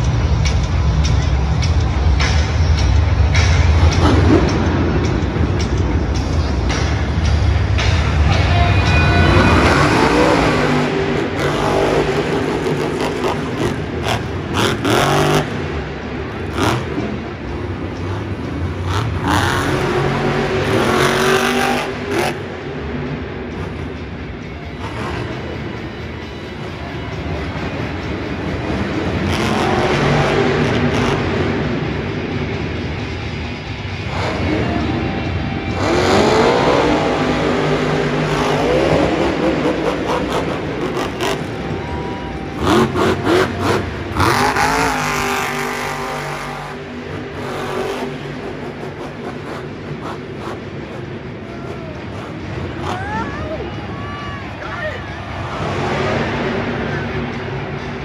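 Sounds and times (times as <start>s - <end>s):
truck engine revving hard: 6.6s - 53.3s, 55.2s - 58.0s.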